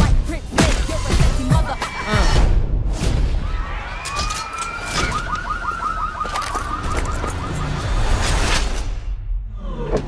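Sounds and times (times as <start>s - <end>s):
warbling siren alarm: 4.2s - 8.3s.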